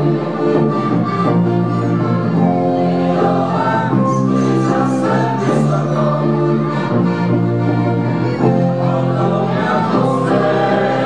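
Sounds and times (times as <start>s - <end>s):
accordion: 0.0s - 11.0s
group singing: 2.3s - 11.0s.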